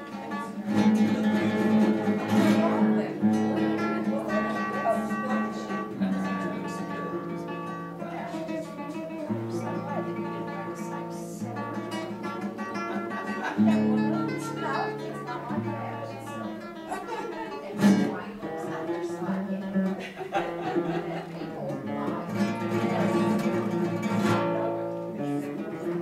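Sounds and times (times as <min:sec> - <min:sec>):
acoustic guitar playing chords: 0:00.0 - 0:26.0.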